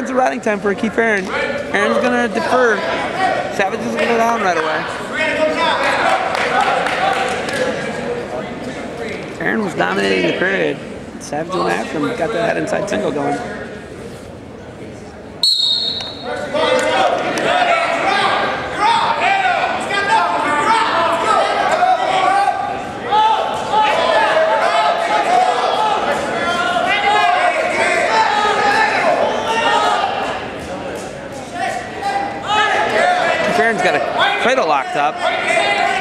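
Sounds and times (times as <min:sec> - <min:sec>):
referee's whistle blast: 0:15.4 - 0:16.4
people shouting in gym: 0:16.3 - 0:30.6, 0:31.6 - 0:36.0.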